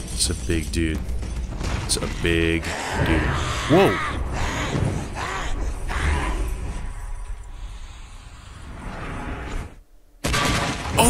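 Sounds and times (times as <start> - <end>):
low rumble: 2.9 - 9.9.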